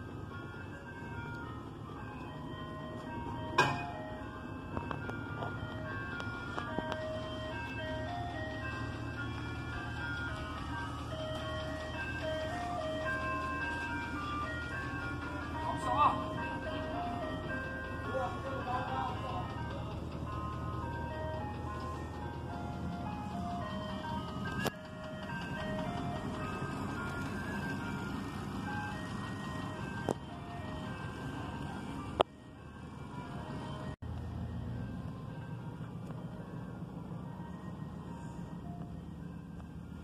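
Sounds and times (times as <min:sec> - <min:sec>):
ice cream truck jingle: 0:00.0 - 0:40.0
low engine hum: 0:01.0 - 0:40.0.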